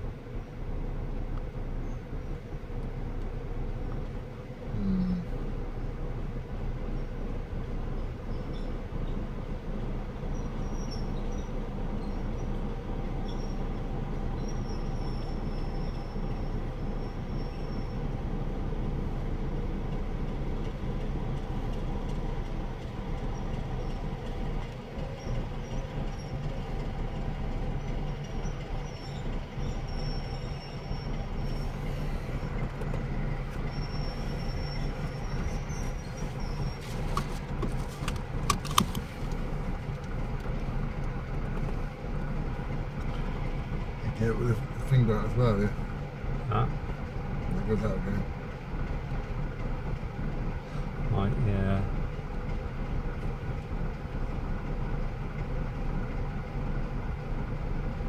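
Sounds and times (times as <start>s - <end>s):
diesel locomotive engine hum: 0.0s - 58.0s.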